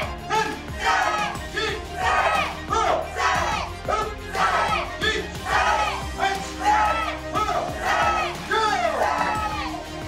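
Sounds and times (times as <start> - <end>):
group of people shouting together: 0.0 - 10.0.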